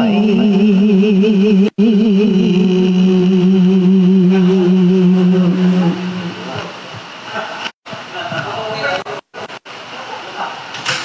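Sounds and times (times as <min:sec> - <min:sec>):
woman reciting melodically: 0:00.0 - 0:06.8.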